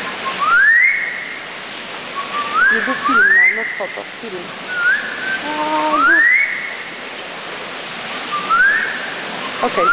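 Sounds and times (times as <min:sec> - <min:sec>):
steady background hiss: 0:00.0 - 0:09.9
man whistling bird song: 0:00.2 - 0:01.1, 0:02.2 - 0:03.6, 0:04.7 - 0:06.6, 0:08.3 - 0:09.9.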